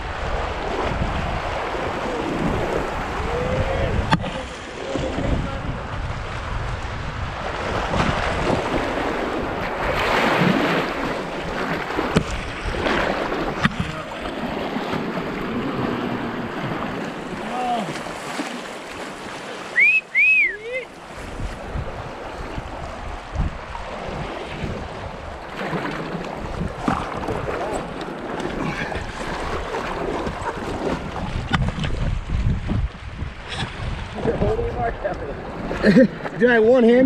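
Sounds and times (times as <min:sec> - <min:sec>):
wind buffeting microphone: 0:00.0 - 0:18.3, 0:20.8 - 0:37.0
river water rushing and splashing: 0:00.0 - 0:36.9.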